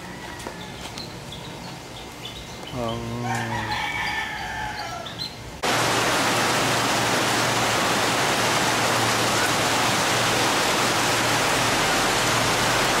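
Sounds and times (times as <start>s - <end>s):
heavy rain pouring: 5.6s - 13.0s.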